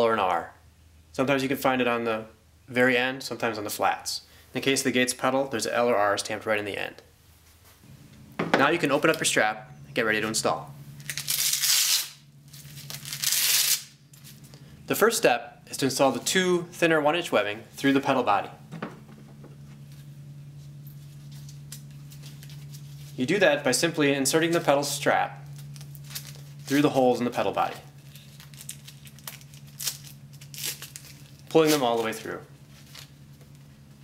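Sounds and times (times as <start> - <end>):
steady low hum: 0.0 - 34.0
hook-and-loop strap ripped open: 11.0 - 13.9.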